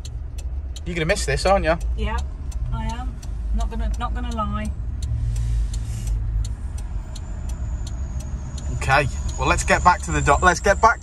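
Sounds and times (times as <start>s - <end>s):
light regular ticking: 0.0s - 11.0s.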